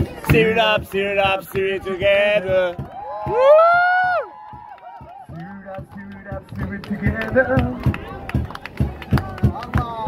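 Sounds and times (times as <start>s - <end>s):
person shouting rising woo: 3.1s - 4.3s.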